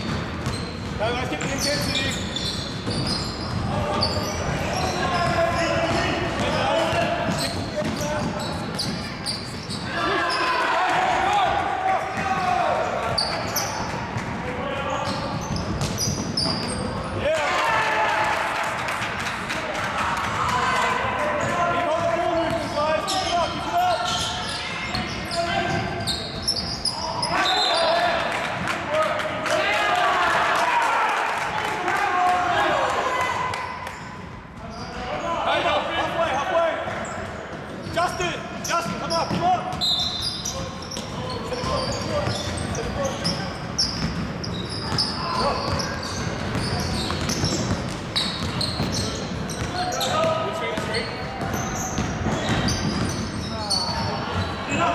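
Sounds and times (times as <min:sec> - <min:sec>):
basketball bouncing on wooden court: 0:00.0 - 0:09.8, 0:13.1 - 0:17.2, 0:38.9 - 0:39.8, 0:40.4 - 0:54.6.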